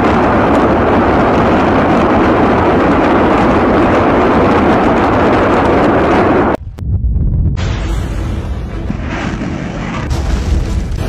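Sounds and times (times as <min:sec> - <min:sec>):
loud steady rushing noise: 0:00.0 - 0:11.0.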